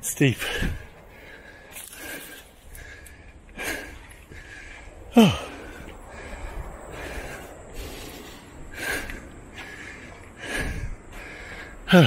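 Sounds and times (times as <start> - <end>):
man breathing hard: 0.3 - 12.0.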